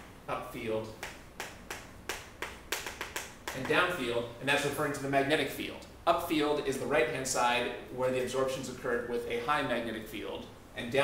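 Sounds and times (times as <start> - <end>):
chalk tapping on chalkboard: 1.0 - 3.9.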